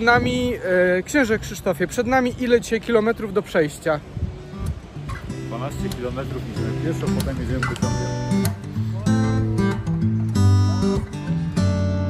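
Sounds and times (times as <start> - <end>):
strummed acoustic guitar: 4.4 - 12.0.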